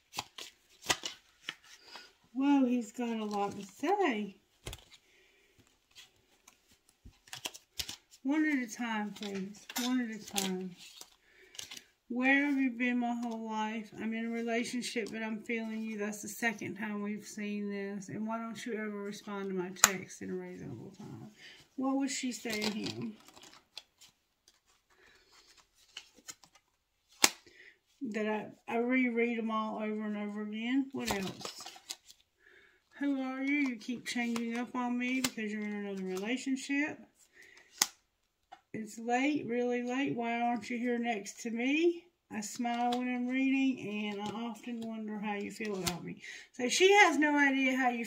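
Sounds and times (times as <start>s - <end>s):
cards shuffling and snapping: 0.0s - 2.1s, 4.5s - 11.9s, 22.2s - 27.5s, 31.0s - 32.3s, 33.4s - 36.3s, 37.4s - 38.6s, 44.0s - 44.8s.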